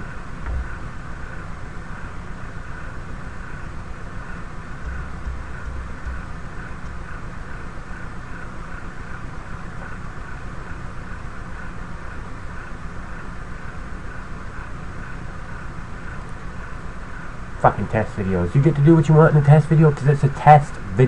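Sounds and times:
low rumble and hiss: 0.0 - 21.0.

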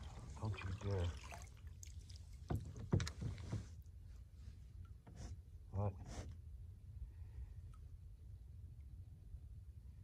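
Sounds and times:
water and boat rumble: 0.0 - 7.0.

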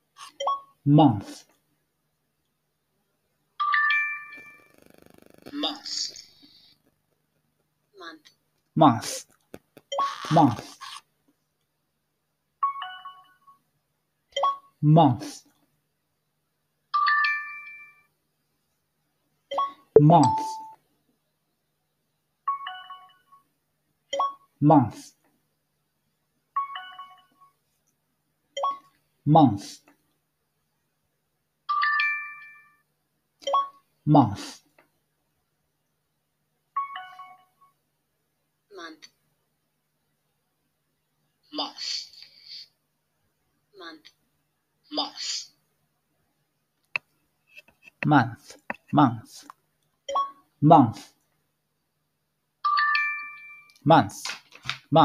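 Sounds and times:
rising success chime: 20.0 - 20.8.

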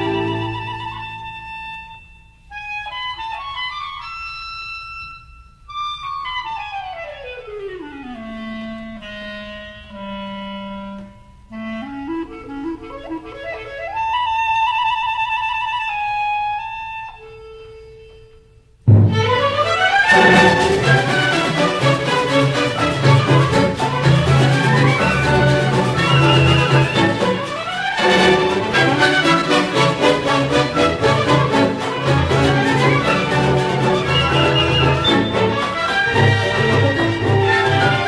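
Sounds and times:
solo woodwind melody: 0.0 - 38.0.

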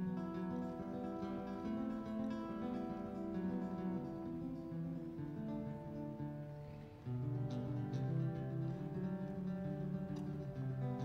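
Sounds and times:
solo guitar melody through amplifier: 0.0 - 11.0.

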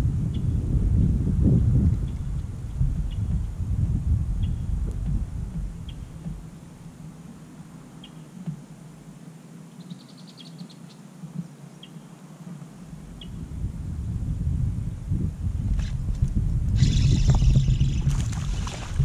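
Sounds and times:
low rumble: 0.0 - 7.3, 12.8 - 19.0
fish splashing at water surface: 18.0 - 19.0.

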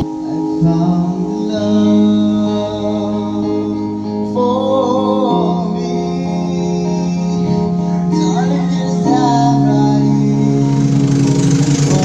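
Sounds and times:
karaoke backing track: 0.0 - 12.0
person singing: 0.0 - 12.0.

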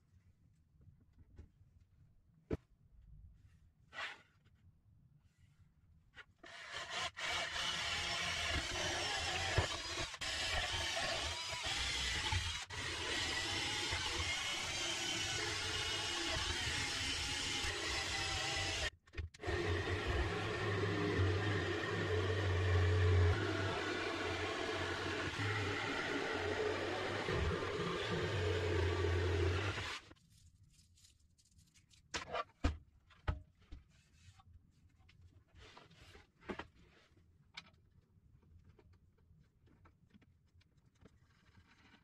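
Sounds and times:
cordless drill boring wood: 6.4 - 30.0
jigsaw cutting plywood: 6.4 - 30.0.

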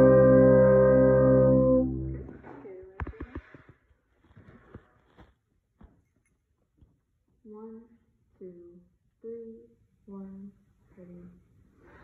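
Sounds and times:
brass sustained chord: 0.0 - 2.4
faint clicks and rustles: 2.4 - 7.4.

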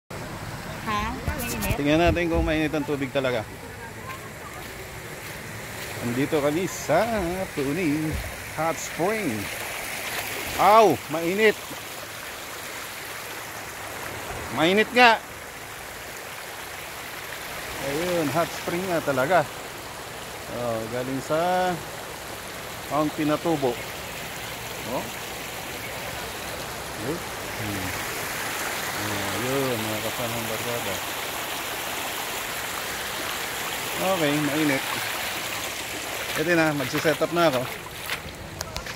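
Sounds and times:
stream rushing over rocks: 0.2 - 38.9.

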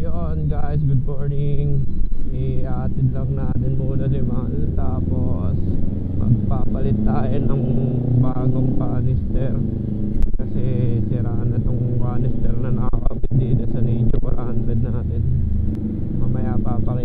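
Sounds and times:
person talking: 0.0 - 9.7, 10.4 - 15.2, 16.2 - 17.0
motorcycle engine at low revs: 0.0 - 17.0.

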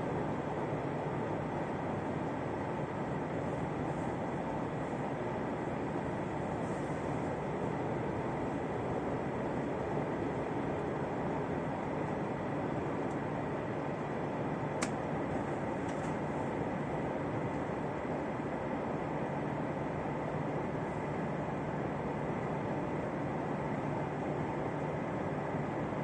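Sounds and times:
faint steady whine: 0.0 - 26.0.

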